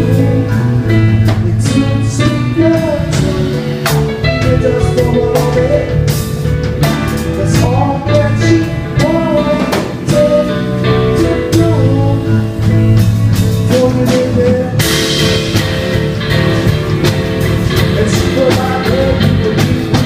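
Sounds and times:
person singing: 0:00.0 - 0:06.4, 0:07.1 - 0:15.6, 0:16.6 - 0:20.0
live band playing: 0:00.0 - 0:20.0.

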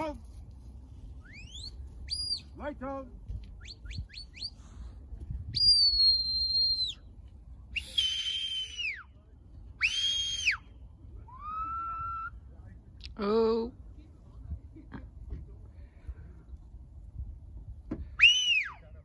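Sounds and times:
short rising whistle chirps: 0:01.2 - 0:02.4, 0:03.6 - 0:04.6, 0:05.5 - 0:07.1, 0:07.8 - 0:09.0, 0:18.2 - 0:18.8
long held whistle notes: 0:05.5 - 0:07.1, 0:07.8 - 0:09.0, 0:18.2 - 0:18.9.

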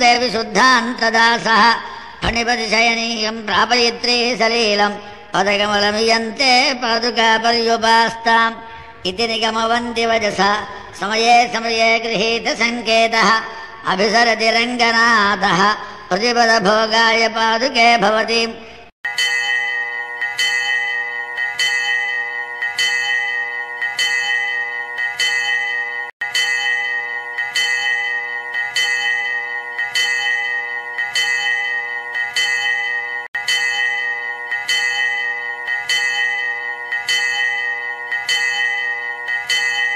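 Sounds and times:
bell ringing: 0:19.0 - 0:39.9.

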